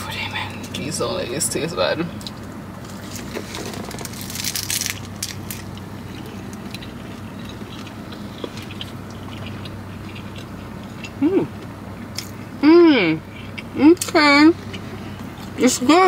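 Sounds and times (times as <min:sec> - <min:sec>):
crisp seaweed crunching: 0:02.9 - 0:11.0
closed-mouth chewing: 0:05.4 - 0:12.6, 0:13.2 - 0:15.6.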